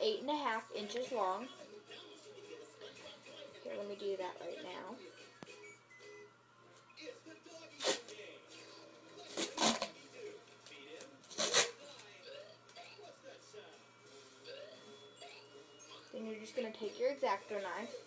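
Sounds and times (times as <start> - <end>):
duct tape ripping off roll: 7.8 - 8.1, 9.3 - 10.0, 11.3 - 11.8.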